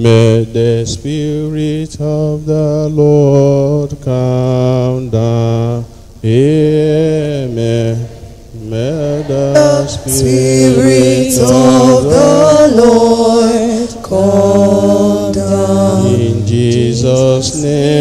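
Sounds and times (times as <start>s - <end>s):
man singing a hymn: 0.0s - 18.0s.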